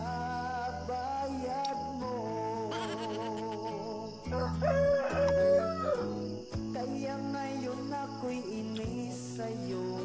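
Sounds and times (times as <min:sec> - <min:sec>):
background music: 0:00.0 - 0:10.0
rooster crowing: 0:04.2 - 0:06.2.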